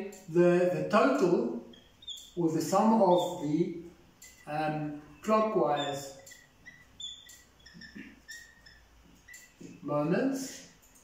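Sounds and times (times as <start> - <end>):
marker squeaking on a whiteboard: 0.0 - 11.0.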